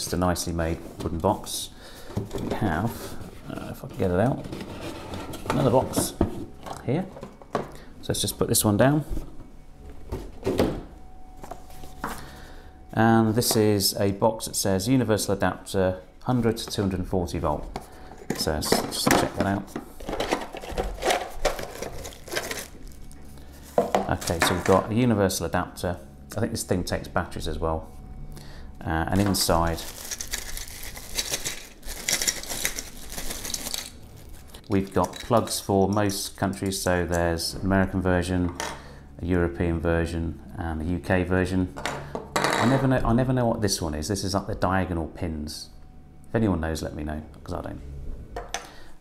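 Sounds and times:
plastic bag crinkling: 0:20.1 - 0:23.3, 0:29.2 - 0:35.4.

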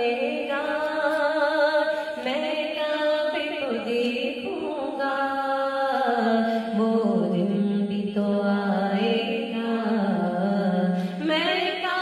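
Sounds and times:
woman singing devotional song: 0:00.0 - 0:12.0.

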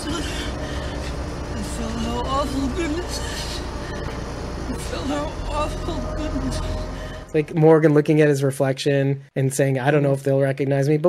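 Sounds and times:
car engine rumble: 0:00.0 - 0:07.7.

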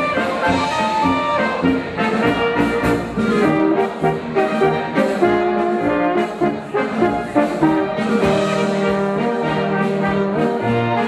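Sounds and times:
brass band playing dance tune: 0:00.0 - 0:11.0.

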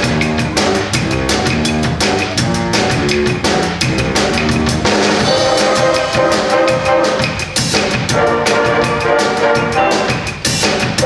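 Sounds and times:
drum kit steady beat: 0:00.0 - 0:11.0
stage band horns: 0:00.0 - 0:11.0.

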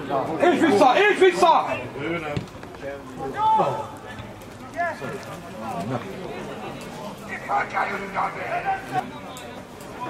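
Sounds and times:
low background murmur: 0:00.0 - 0:10.0.

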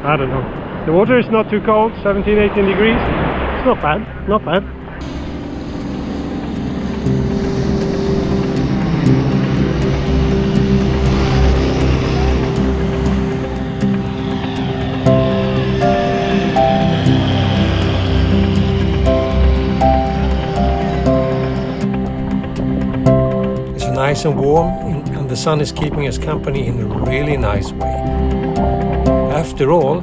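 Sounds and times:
propeller plane engine overhead: 0:03.3 - 0:29.9
background music with steady beat: 0:05.0 - 0:30.0.

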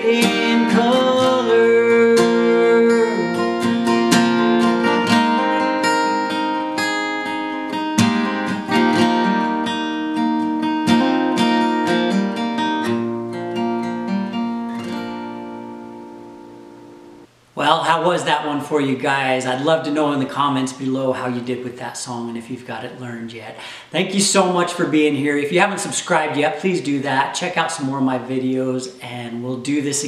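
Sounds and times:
acoustic guitar picking and strumming: 0:00.0 - 0:17.4.

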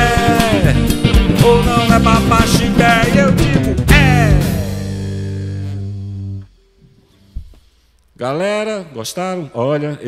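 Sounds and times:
guitars and bass chord ringing: 0:00.0 - 0:06.8.

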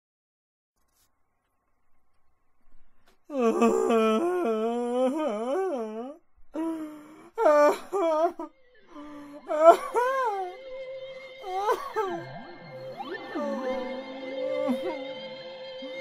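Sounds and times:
wordless wailing vocals: 0:03.3 - 0:16.0.

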